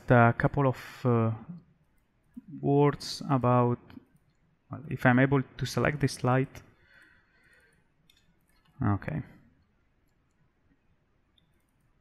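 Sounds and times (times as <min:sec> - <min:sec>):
computer mouse clicks: 0:07.5 - 0:08.8, 0:11.3 - 0:11.9.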